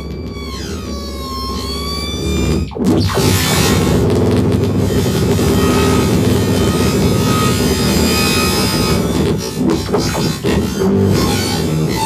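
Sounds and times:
gliding squealing tones: 0:00.0 - 0:12.0
wall of distorted noise: 0:00.0 - 0:12.0.

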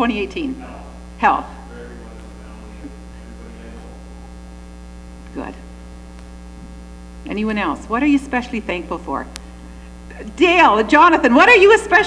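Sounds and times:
electrical mains hum: 0:00.0 - 0:12.0
person speaking a word: 0:01.7 - 0:04.3.

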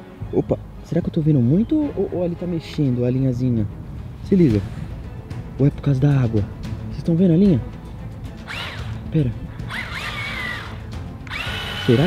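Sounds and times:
small electric motor whining: 0:08.4 - 0:09.0, 0:09.6 - 0:12.0.

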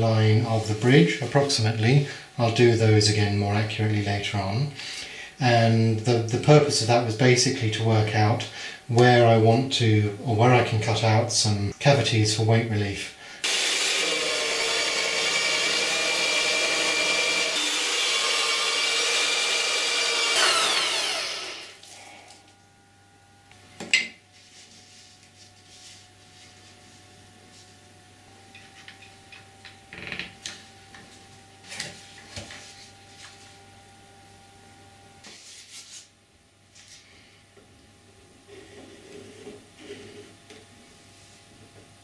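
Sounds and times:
drill press boring into wood: 0:13.4 - 0:21.8.

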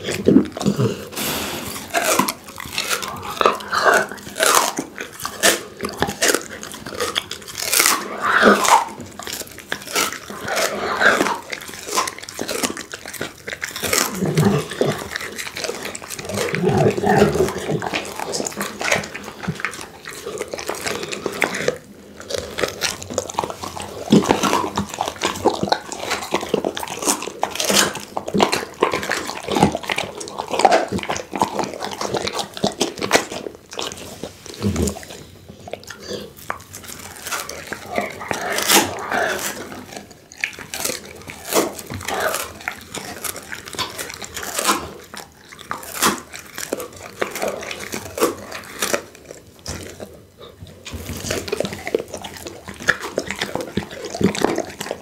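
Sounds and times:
dog crunching bone: 0:00.0 - 0:55.0.

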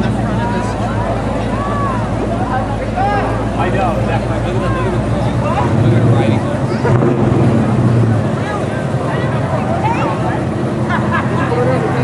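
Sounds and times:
car engine running: 0:00.0 - 0:12.0
spectators chattering: 0:00.0 - 0:12.0.

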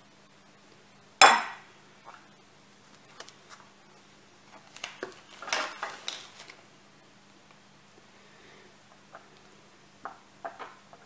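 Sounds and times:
plastic bag crinkling: 0:04.5 - 0:06.6.

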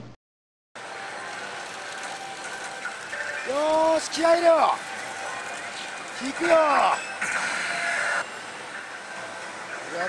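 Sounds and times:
music: 0:00.8 - 0:10.0
gaming parlor din: 0:01.2 - 0:10.0.

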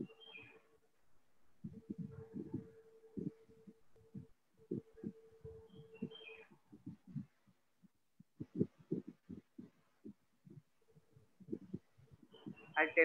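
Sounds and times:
faint steady hum: 0:00.0 - 0:13.0
faint low thumps: 0:01.5 - 0:12.8.

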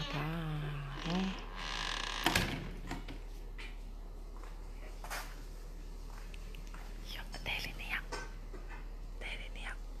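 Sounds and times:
low steady hum: 0:00.0 - 0:10.0
person whispering: 0:07.0 - 0:08.1, 0:09.2 - 0:10.0.

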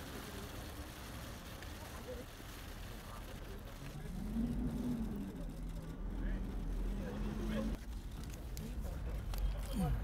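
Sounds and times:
faint voices: 0:00.0 - 0:10.0
low outdoor rumble: 0:00.0 - 0:10.0.

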